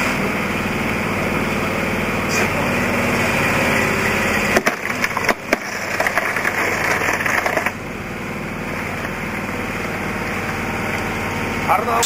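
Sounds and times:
drilling machine engine idling: 0.0 - 12.0
gritty rattling: 3.8 - 7.8.

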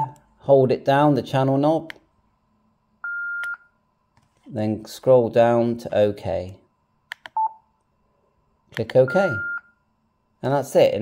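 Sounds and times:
high radio key beep: 8.8 - 9.8.

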